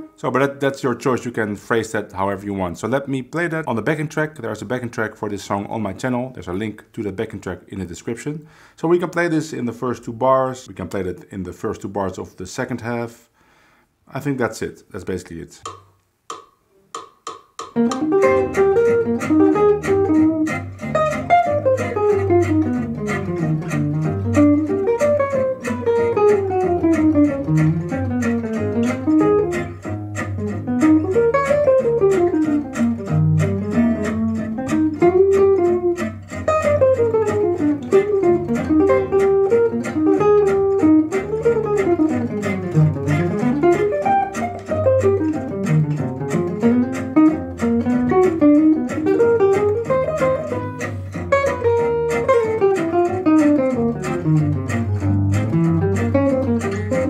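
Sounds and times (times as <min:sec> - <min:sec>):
bass line: 0:17.8 - 0:57.0
jazz guitar playing fast lines: 0:17.8 - 0:57.0.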